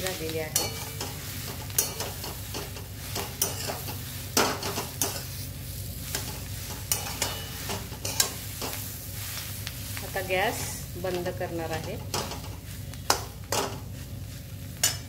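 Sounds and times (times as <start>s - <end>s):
spatula scraping a pan: 0.0s - 9.6s
oil sizzling: 0.0s - 15.0s.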